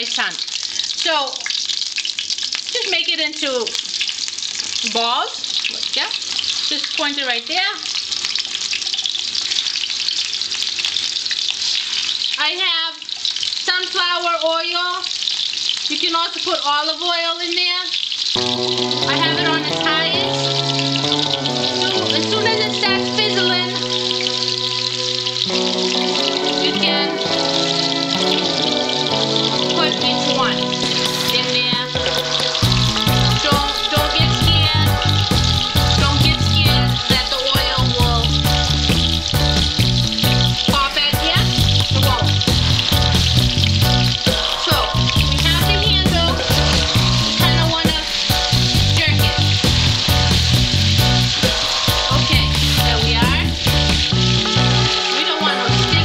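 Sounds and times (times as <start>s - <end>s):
meatballs sizzling in oil: 0.0s - 55.6s
background music with beat: 18.4s - 56.0s.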